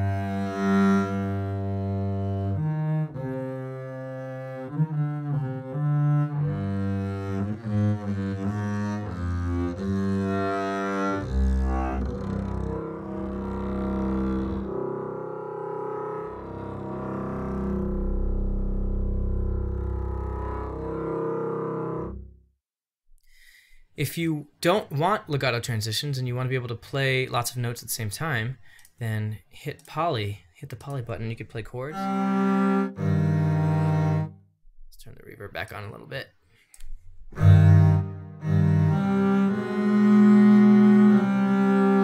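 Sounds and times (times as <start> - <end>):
bowed double bass: 0.0 - 22.4, 31.9 - 34.3, 37.3 - 42.0.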